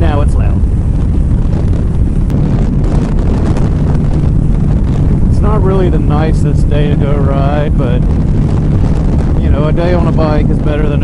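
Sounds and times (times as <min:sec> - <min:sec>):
wind rush on microphone: 0:00.0 - 0:11.0.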